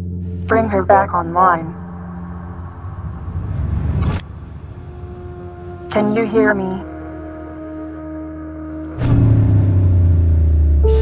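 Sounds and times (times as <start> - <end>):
low steady hum: 0.0 - 8.0
low rumble swell: 0.3 - 7.9
sharp hit: 1.8 - 5.8.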